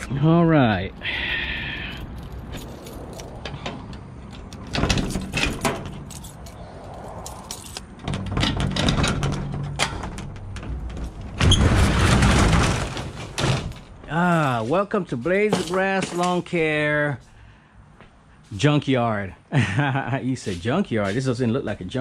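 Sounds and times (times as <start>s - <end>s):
keys jangling and clicking: 1.8s - 3.6s, 4.3s - 7.9s
metal roll-up door rattling: 3.3s - 6.5s, 7.3s - 14.0s.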